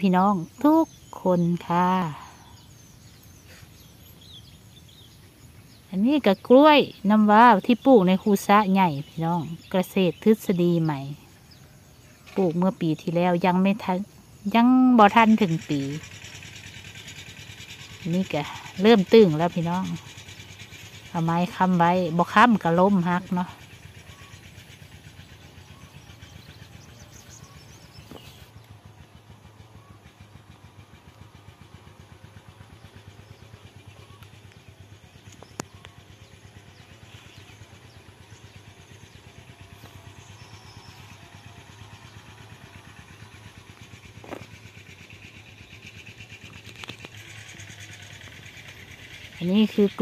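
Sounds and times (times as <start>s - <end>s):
engine running steadily: 0.0s - 50.0s.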